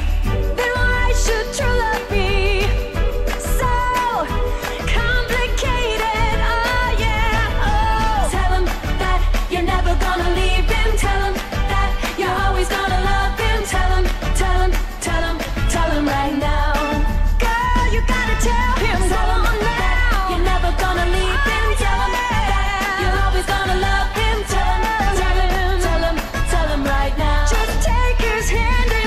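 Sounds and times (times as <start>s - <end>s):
pop song with singer: 0.0s - 29.0s.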